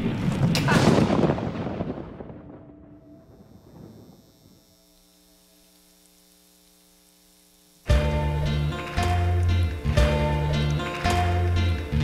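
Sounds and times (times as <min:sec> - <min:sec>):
loud boom: 0:00.0 - 0:04.1
faint steady hum: 0:02.9 - 0:11.9.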